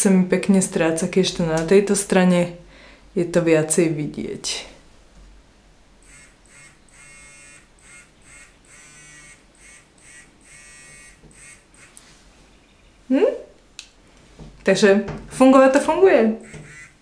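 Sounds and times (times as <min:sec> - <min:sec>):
facial device buzzing: 0:06.0 - 0:12.1, 0:16.4 - 0:17.0.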